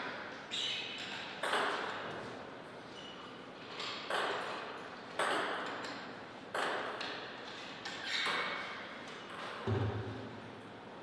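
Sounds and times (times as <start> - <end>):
table tennis ball bouncing: 1.4 - 2.0, 4.1 - 4.6, 5.2 - 7.2.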